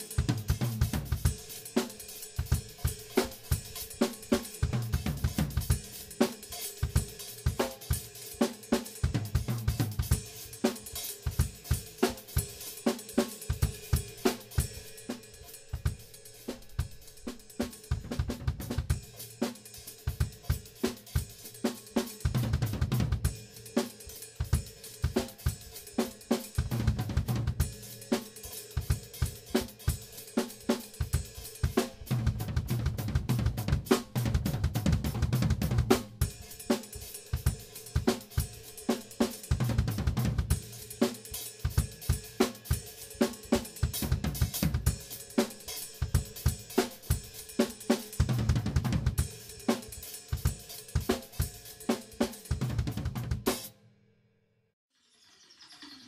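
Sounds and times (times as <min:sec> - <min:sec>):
drum kit solo: 0:00.0 - 0:53.8.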